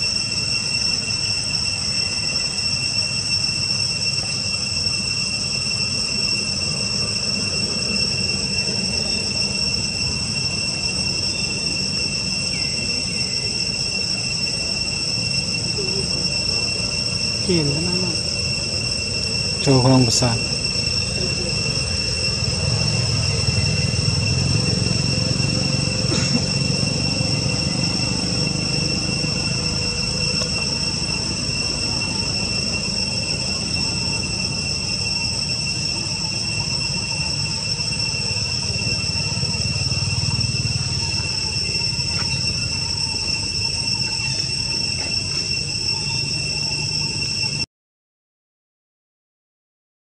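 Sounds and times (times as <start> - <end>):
insects droning: 0.0 - 47.7.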